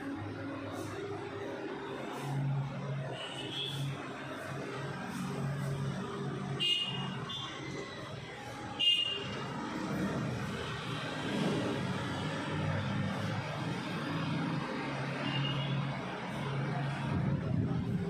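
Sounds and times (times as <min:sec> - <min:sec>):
street traffic drone: 0:00.0 - 0:18.0.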